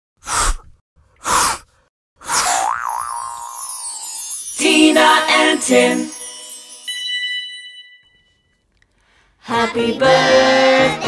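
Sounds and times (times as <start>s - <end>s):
wobbling whistle-like boing: 2.5s - 3.7s
sparkly falling shimmer: 3.1s - 8.0s.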